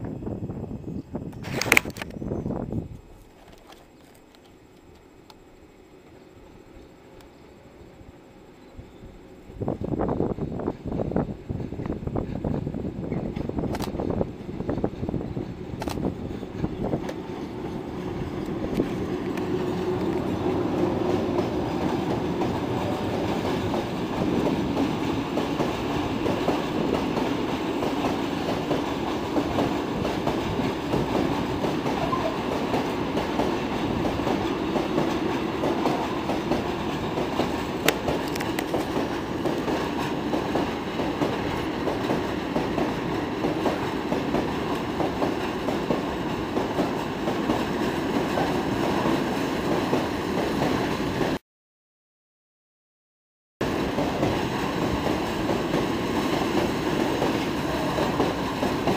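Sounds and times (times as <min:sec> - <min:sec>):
freight train wheels rumbling: 0:00.0 - 0:51.4, 0:53.6 - 0:58.9
sharp click: 0:13.7 - 0:14.0.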